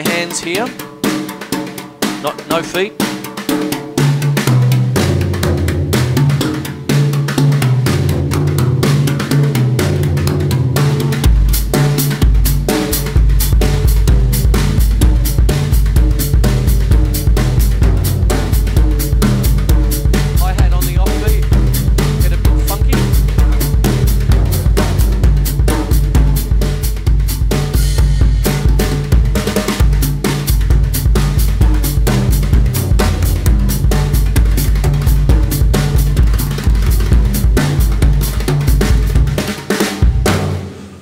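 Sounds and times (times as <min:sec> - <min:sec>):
tom-toms played with brushes: 0:00.0 - 0:41.0
cymbal strokes: 0:40.3 - 0:41.0.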